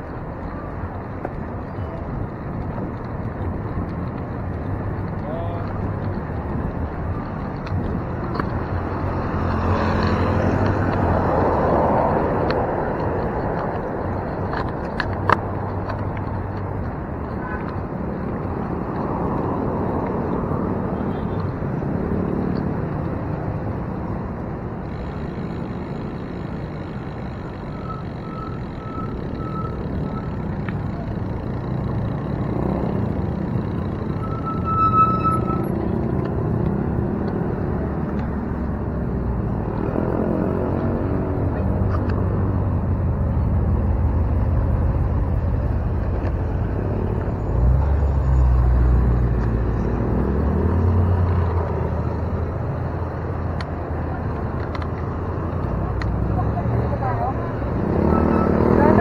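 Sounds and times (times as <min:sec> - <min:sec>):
heavy vehicle rumble: 0:00.0 - 0:59.0
rumble of passing cars: 0:00.0 - 0:59.0
short high beeps: 0:27.7 - 0:30.4, 0:34.2 - 0:35.7.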